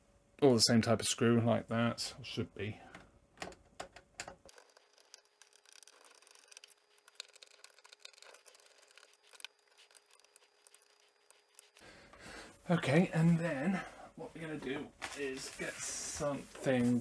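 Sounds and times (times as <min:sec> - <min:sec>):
faint clicks and metal rubbing: 0:02.9 - 0:11.8.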